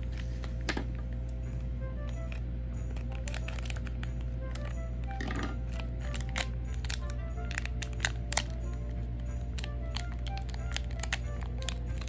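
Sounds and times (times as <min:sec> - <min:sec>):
soft background music: 0:00.0 - 0:12.0
foil wrapper crinkling and tearing: 0:02.0 - 0:12.0.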